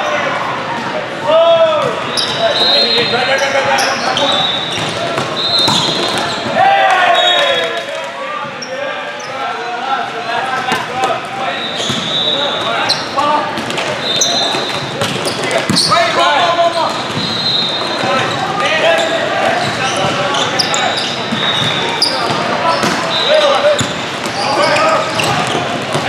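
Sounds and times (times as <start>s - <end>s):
sneakers squeaking on court floor: 1.8s - 6.6s, 8.4s - 9.5s, 10.6s - 26.0s
sharp volleyball hits: 4.5s - 6.6s, 11.8s - 12.8s, 21.2s - 24.4s
people shouting: 5.1s - 7.8s.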